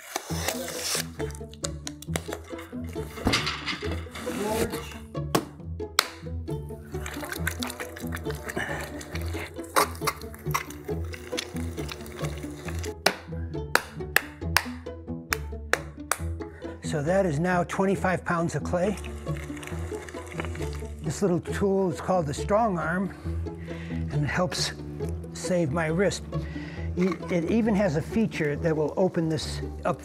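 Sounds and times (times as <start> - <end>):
background music with low bass: 0.0 - 30.0.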